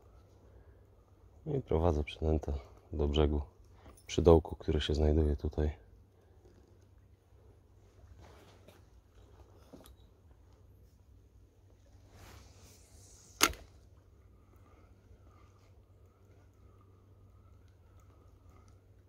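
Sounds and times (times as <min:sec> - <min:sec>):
faint wavering whine: 0:00.0 - 0:19.0.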